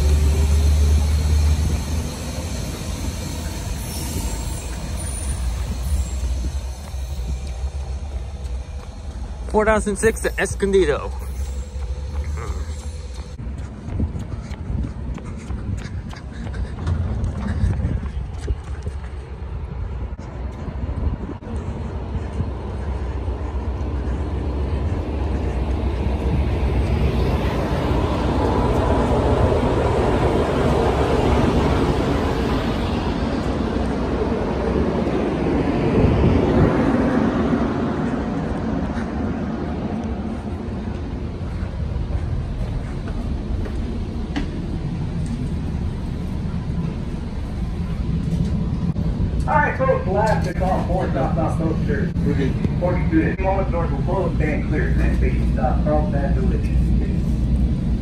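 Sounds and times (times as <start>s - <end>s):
diesel train rumbling past: 0.0s - 58.0s.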